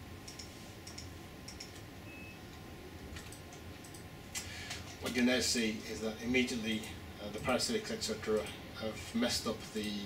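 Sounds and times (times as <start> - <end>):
steady low hum: 0.0 - 10.0
computer mouse clicking: 0.2 - 1.9, 3.2 - 5.2.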